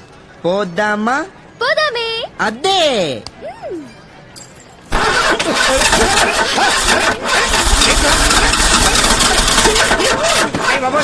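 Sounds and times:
car engine starting: 4.9 - 11.0.

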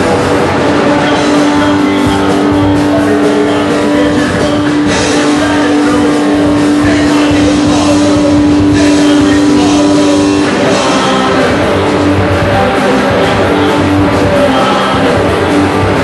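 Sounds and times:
punk rock band playing live: 0.0 - 16.0.

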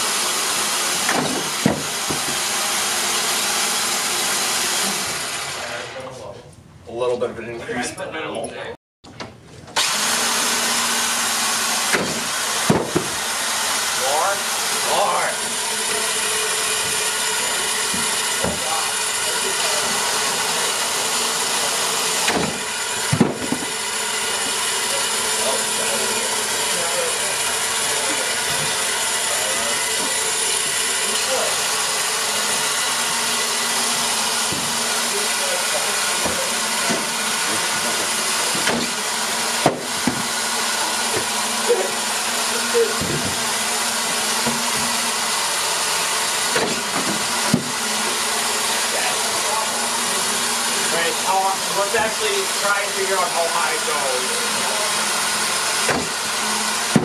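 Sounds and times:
electric motors whirring: 0.0 - 6.3, 9.7 - 57.0
sharp knocks: 1.0 - 2.4, 11.9 - 13.2, 22.2 - 23.8, 34.4 - 34.8, 38.5 - 39.0, 39.6 - 40.3, 43.0 - 43.5, 46.6 - 47.8, 55.8 - 56.2.

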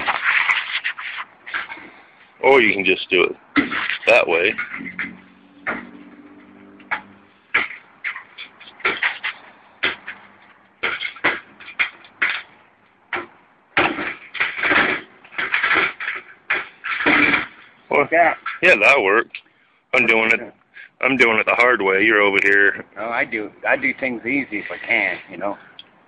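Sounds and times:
metal scraping and rattling: 3.5 - 12.6
sheet metal being pried apart: 6.9 - 17.7.

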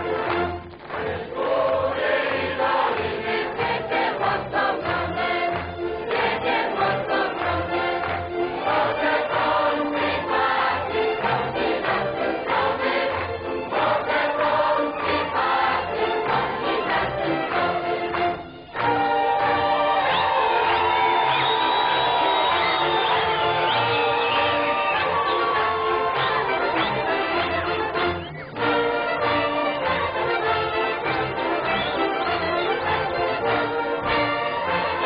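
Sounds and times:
choir singing: 0.0 - 35.0
instrumental accompaniment: 0.0 - 35.0.

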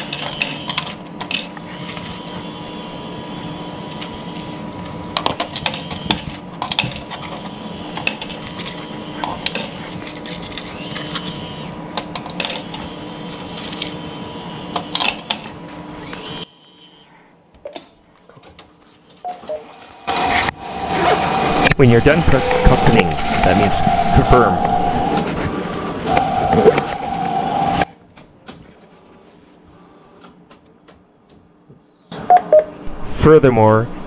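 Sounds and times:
coin mechanism running: 0.0 - 4.5, 5.5 - 11.5, 12.2 - 15.6
high steady machine tone: 0.0 - 17.2, 19.3 - 27.9
machine humming: 19.8 - 27.9, 32.4 - 34.0.

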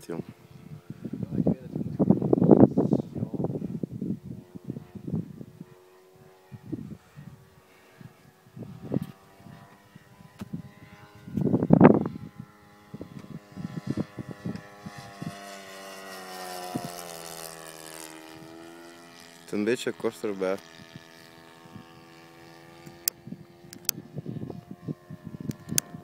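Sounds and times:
model plane engine drone: 0.0 - 26.0.

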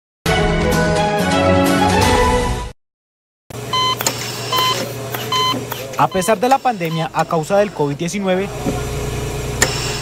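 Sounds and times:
patient monitor beeping: 3.7 - 7.5.

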